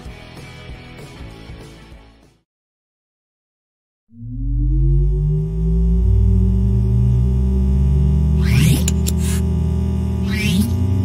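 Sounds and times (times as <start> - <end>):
rising whoosh: 4.1 - 8.8
deep sustained drone: 4.1 - 11.0
steady tones: 4.1 - 11.0.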